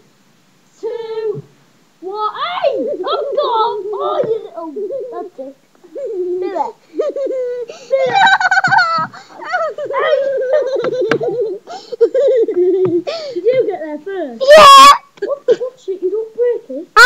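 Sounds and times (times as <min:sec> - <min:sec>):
children giggling and laughing: 0:02.6 - 0:14.0.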